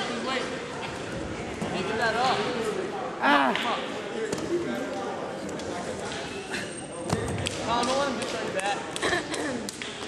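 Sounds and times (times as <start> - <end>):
voices calling out in gym: 0.0 - 10.0.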